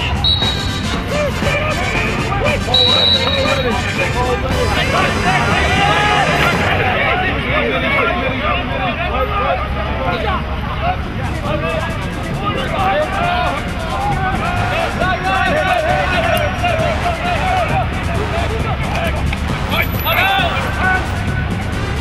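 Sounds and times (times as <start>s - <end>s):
crowd shouting: 0.0s - 22.0s.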